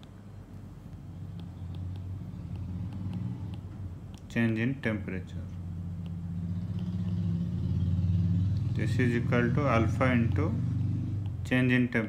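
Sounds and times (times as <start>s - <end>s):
low background hum: 0.0s - 12.0s
stylus ticking on tablet: 0.9s - 4.3s, 6.0s - 7.3s.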